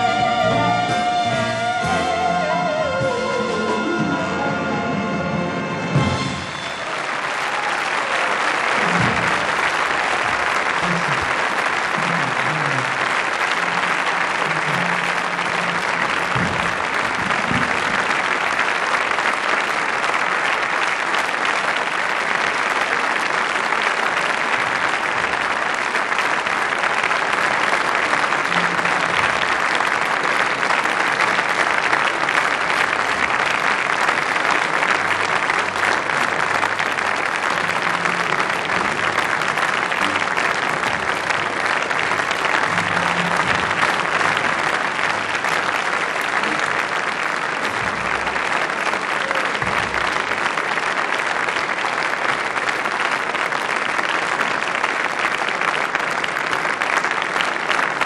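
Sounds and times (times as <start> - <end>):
audience applauding: 0.0 - 58.0.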